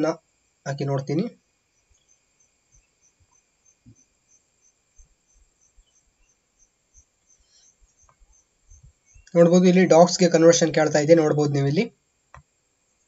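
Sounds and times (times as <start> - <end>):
soft high-pitched chirp: 1.7 - 9.4.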